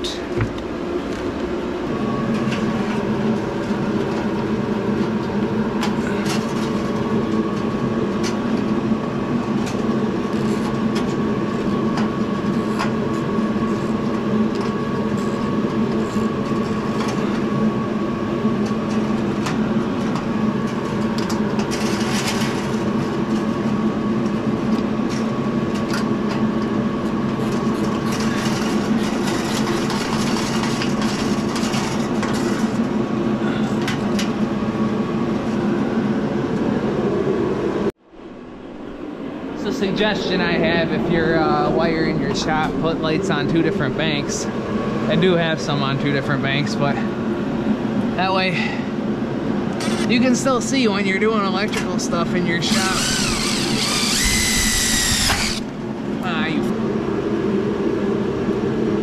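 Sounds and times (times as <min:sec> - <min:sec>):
loud mechanical drone: 0:00.0 - 0:59.0.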